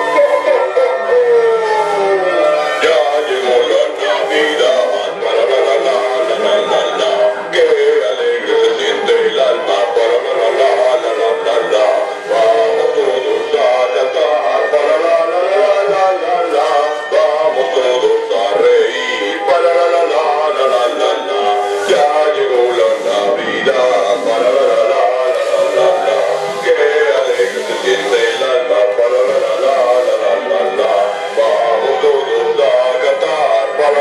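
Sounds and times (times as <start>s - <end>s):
synthetic male singing voice: 0.0s - 34.0s
music: 2.8s - 34.0s.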